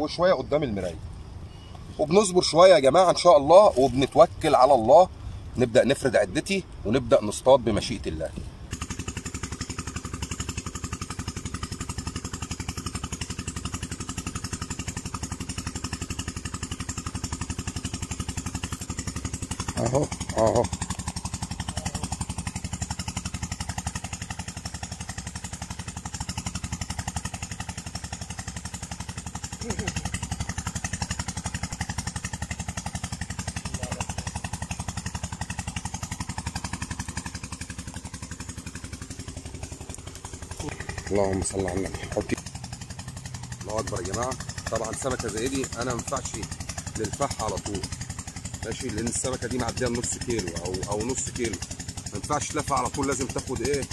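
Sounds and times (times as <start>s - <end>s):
small engine running: 0.0s - 53.9s.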